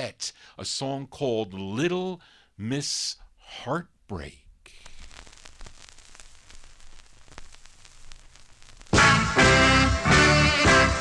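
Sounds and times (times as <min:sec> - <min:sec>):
vinyl record hiss: 0:00.0 - 0:11.0
vinyl crackles and pops: 0:04.2 - 0:11.0.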